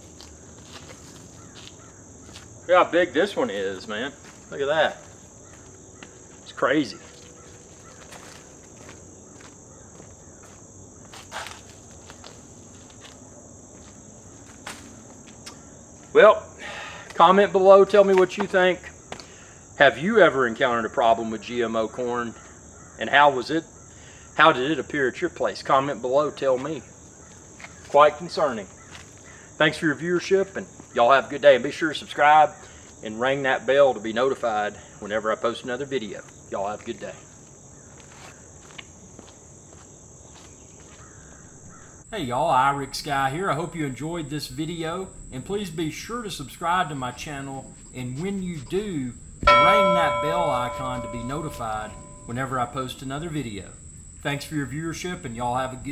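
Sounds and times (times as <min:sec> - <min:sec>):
insects chirring: 0:00.0 - 0:55.9.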